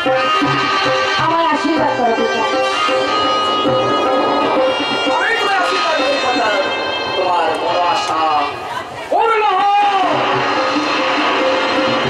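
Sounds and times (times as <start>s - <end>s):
low drum beats: 0.0s - 9.2s
melodic instrument playing: 1.6s - 8.7s.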